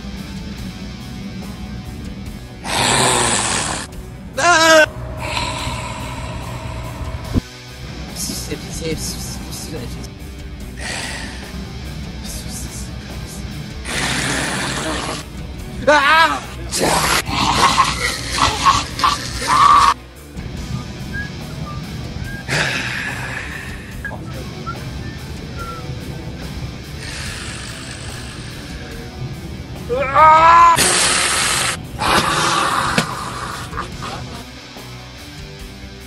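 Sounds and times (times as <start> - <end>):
music: 0.0 - 36.0
man's wordless outbursts: 15.8 - 20.0.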